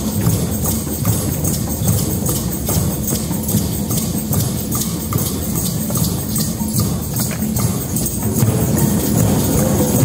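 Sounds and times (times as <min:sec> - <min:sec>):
hand drums playing: 0:00.0 - 0:10.0
high rattle: 0:00.0 - 0:10.0.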